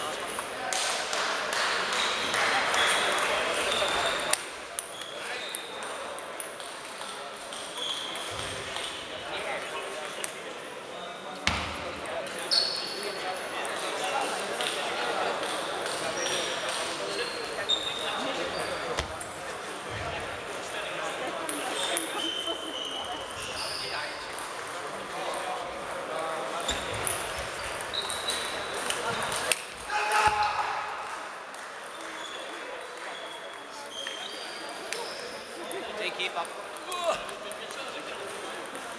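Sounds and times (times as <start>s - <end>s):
voices in a hall: 0.0s - 38.9s.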